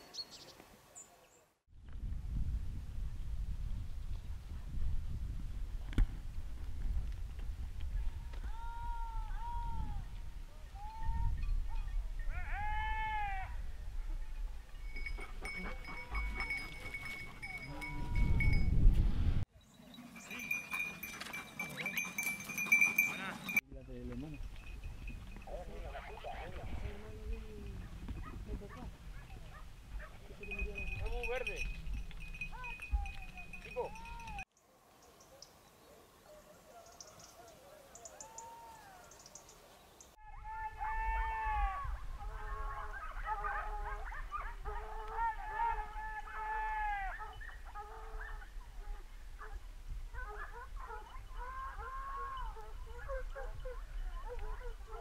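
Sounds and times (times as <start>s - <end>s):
wind rumble on microphone: 1.7s - 19.5s, 24.1s - 34.4s, 40.3s - 45.9s, 47.2s - 55.0s
dog bell tinkling: 14.7s - 18.8s, 19.8s - 23.6s, 30.3s - 34.4s
hounds yelping: 15.0s - 18.3s, 19.9s - 23.6s, 27.8s - 30.2s, 42.2s - 55.0s.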